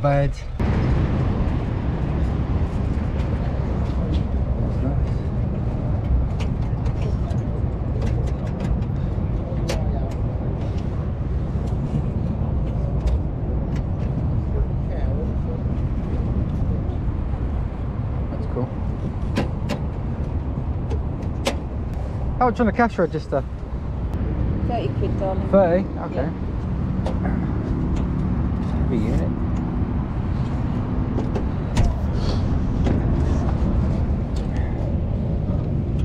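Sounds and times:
wind rumbling on microphone: 0:00.0 - 0:36.0.

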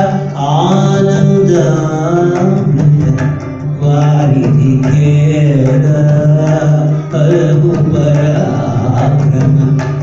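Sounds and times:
man singing with gliding ornaments: 0:00.0 - 0:10.0.

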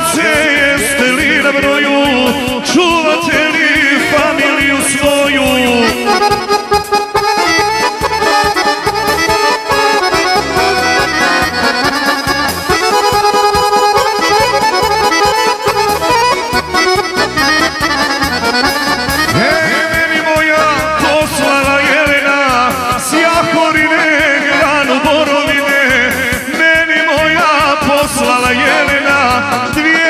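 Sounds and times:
accordion melody: 0:00.0 - 0:30.0
bass and drum beat: 0:00.0 - 0:30.0
person singing: 0:00.0 - 0:30.0.

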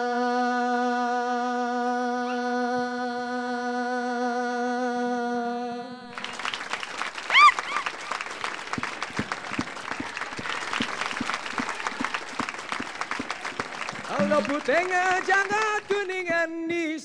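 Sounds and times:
audience applauding: 0:06.1 - 0:16.5
short high-pitched cheer: 0:07.3 - 0:08.2, 0:14.1 - 0:14.8.

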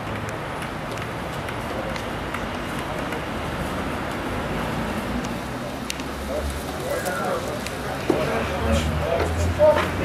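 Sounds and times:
traffic rumble: 0:00.0 - 0:10.0.

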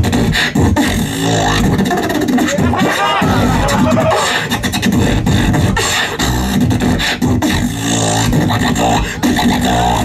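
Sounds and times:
beatboxed drum hits: 0:00.0 - 0:10.0
beatboxing buzzing bass note: 0:00.0 - 0:10.0
high gliding vocal sound: 0:02.0 - 0:06.2.

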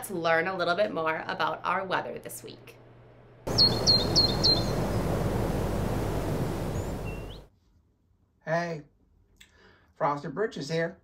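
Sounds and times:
small bird chirping: 0:03.5 - 0:05.2, 0:06.4 - 0:07.5
steady rushing noise: 0:03.5 - 0:07.4.

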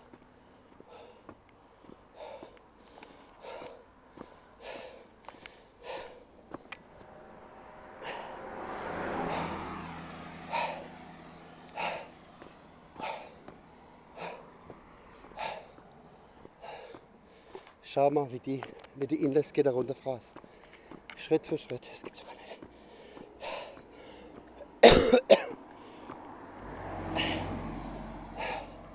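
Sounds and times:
person breathing hard: 0:00.0 - 0:17.8, 0:20.4 - 0:21.1, 0:22.2 - 0:24.8, 0:25.6 - 0:26.4, 0:27.0 - 0:28.9.

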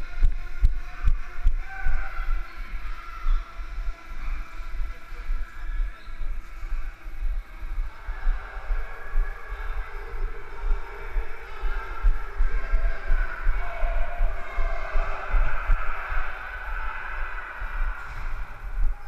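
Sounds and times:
steady background noise: 0:00.0 - 0:19.0.

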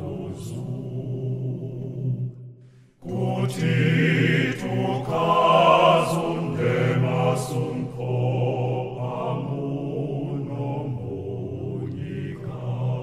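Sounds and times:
choir singing a hymn: 0:00.0 - 0:02.4, 0:03.0 - 0:13.0.

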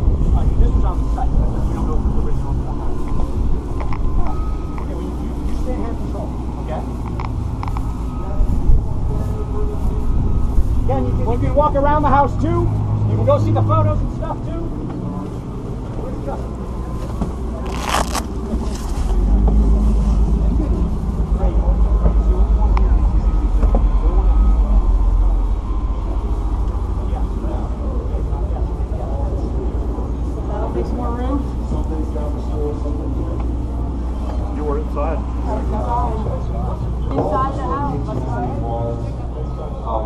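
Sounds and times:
loud low rumble: 0:00.0 - 0:39.4
group of people talking quietly: 0:00.0 - 0:40.0.

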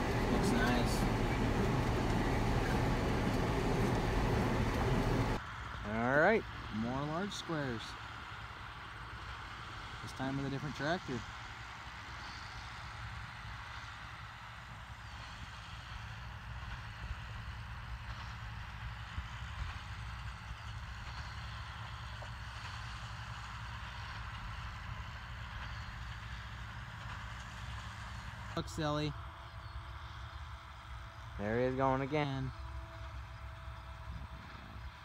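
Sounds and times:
tractor engine hum: 0:00.0 - 0:35.0.

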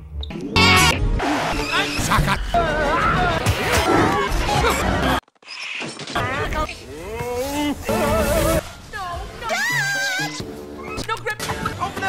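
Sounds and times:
film soundtrack music: 0:00.0 - 0:05.2, 0:06.4 - 0:12.0
cartoon character squeal: 0:09.5 - 0:11.0.

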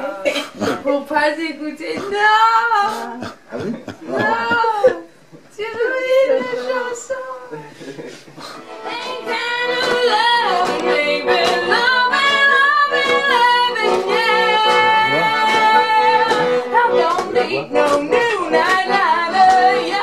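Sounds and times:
woman singing: 0:00.0 - 0:03.2, 0:04.1 - 0:07.6, 0:08.8 - 0:20.0.

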